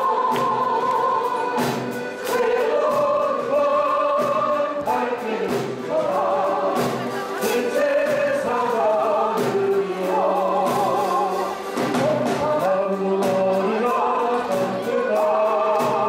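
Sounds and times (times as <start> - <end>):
piano accordions playing: 0.0 - 16.0
voices singing: 0.0 - 16.0.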